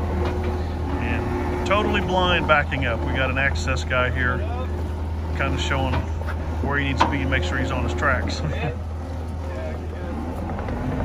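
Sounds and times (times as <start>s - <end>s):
diesel engine droning: 0.0s - 11.0s.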